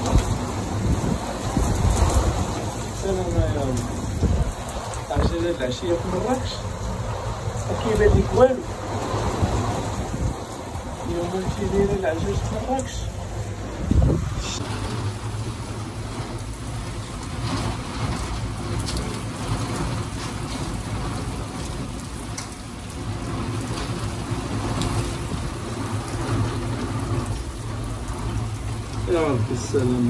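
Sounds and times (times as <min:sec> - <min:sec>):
rain falling steadily: 0:00.0 - 0:30.0.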